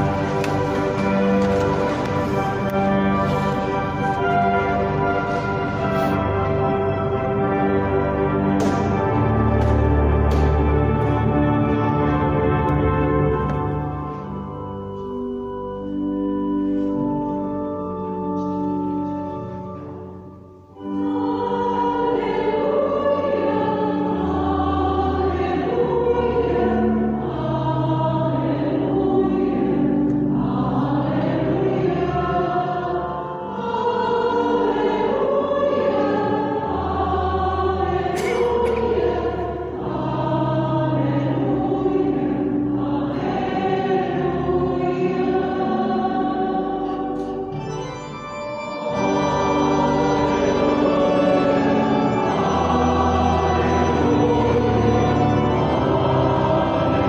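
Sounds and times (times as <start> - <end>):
church choir singing: 0.0 - 57.0
organ accompaniment: 0.0 - 57.0.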